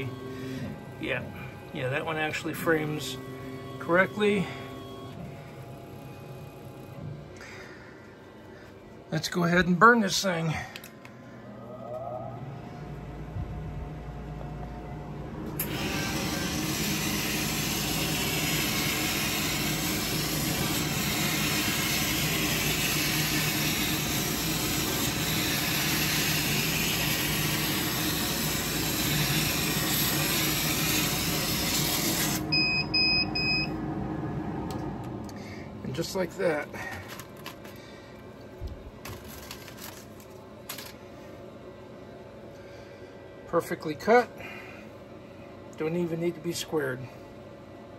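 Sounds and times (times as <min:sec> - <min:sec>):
laser cutter low hum: 0:00.0 - 0:07.3, 0:11.4 - 0:36.8
fans and air assist hissing: 0:00.0 - 0:47.9
short machine beeps: 0:32.5 - 0:33.8.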